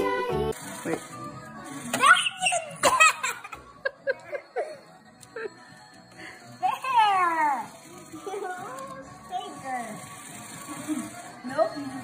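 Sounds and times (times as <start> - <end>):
young child giggling: 2.8 - 4.7.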